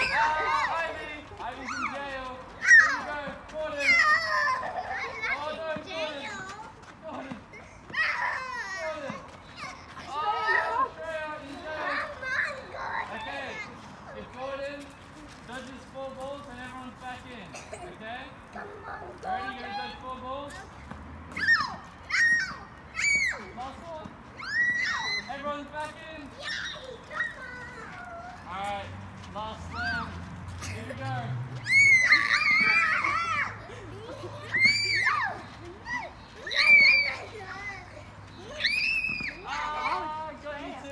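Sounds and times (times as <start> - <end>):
children calling and shouting: 0.0 - 40.9.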